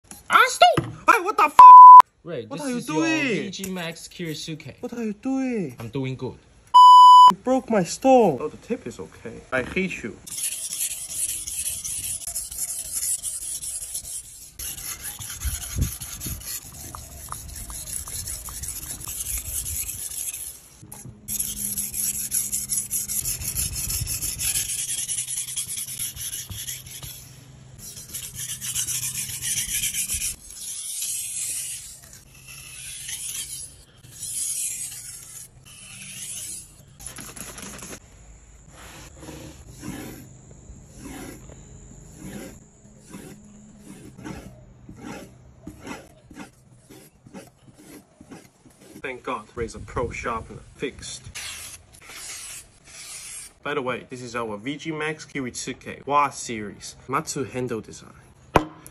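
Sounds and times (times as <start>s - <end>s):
knife scraping on whetstone: 10.2s - 38.0s, 38.7s - 49.4s, 51.3s - 53.6s.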